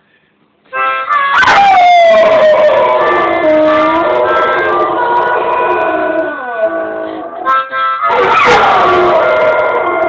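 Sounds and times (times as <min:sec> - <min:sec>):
harmonica blues music: 0:00.7 - 0:01.6, 0:03.0 - 0:08.4
dog howling: 0:01.3 - 0:07.5, 0:08.1 - 0:10.0.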